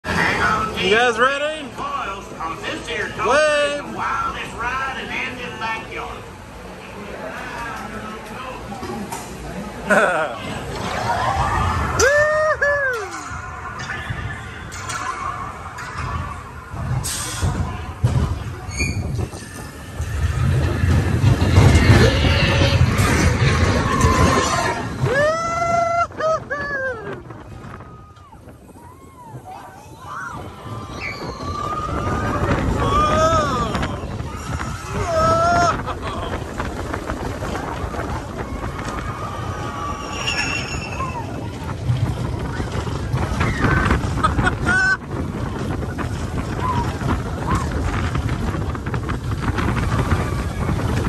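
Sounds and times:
roller coaster train rumbling on track: 0:00.0 - 0:51.0
person whooping: 0:12.0 - 0:13.2, 0:25.0 - 0:27.2.

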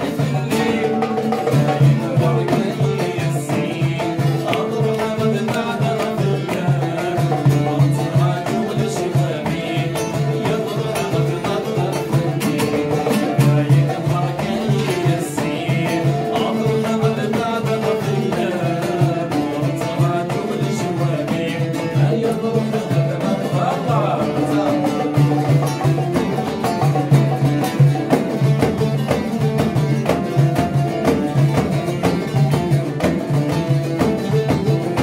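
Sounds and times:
frame drum beating: 0:00.0 - 0:35.0
man singing folk song: 0:00.0 - 0:35.0
plucked lute melody: 0:00.0 - 0:35.0.

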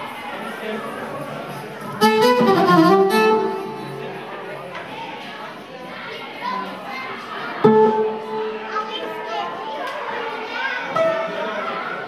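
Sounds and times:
violin melodic flourish: 0:02.0 - 0:04.2.

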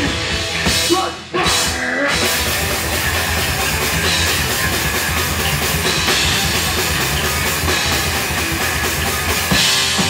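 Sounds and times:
drum kit: 0:00.0 - 0:10.0
electric guitars: 0:00.0 - 0:10.0.

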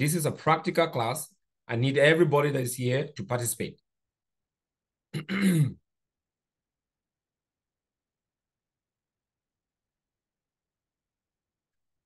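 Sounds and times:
man clearing his throat: 0:05.1 - 0:05.9.

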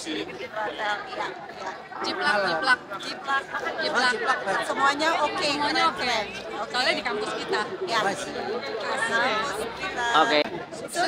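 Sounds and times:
chatter of voices: 0:00.0 - 0:11.0.

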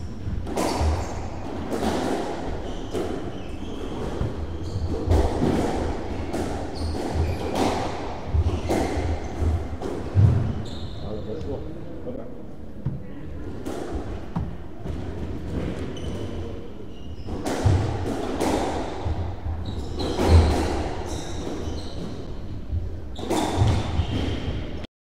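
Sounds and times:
squash ball impacts: 0:00.2 - 0:10.6, 0:12.8 - 0:16.5, 0:17.2 - 0:24.6
shoes squeaking on wooden floor: 0:02.5 - 0:05.4, 0:06.1 - 0:11.3, 0:15.6 - 0:17.9, 0:19.0 - 0:22.4.

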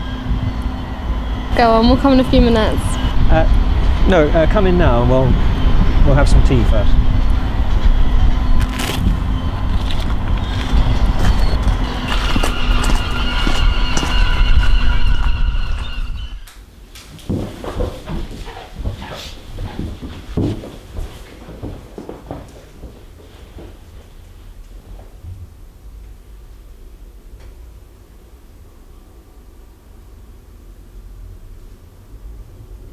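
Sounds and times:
street traffic noise: 0:00.0 - 0:16.2
footsteps: 0:08.6 - 0:25.4.

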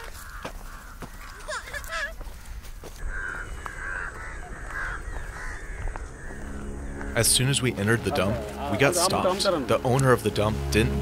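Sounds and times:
crows cawing: 0:00.0 - 0:09.7.

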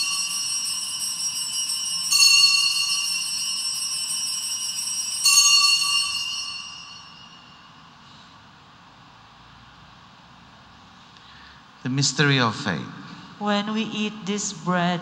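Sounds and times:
altar bells ringing: 0:00.0 - 0:08.0.

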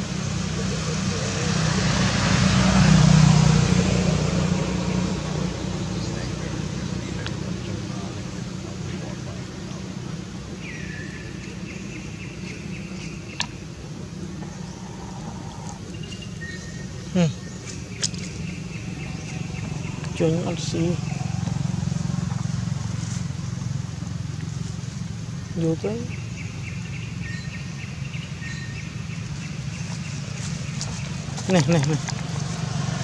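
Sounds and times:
low motor hum: 0:00.0 - 0:33.0.

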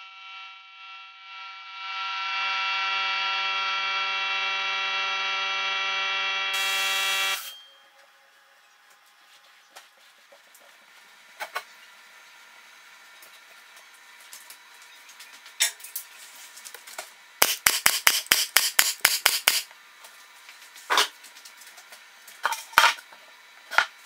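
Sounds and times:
staple gun firing: 0:17.4 - 0:19.7.

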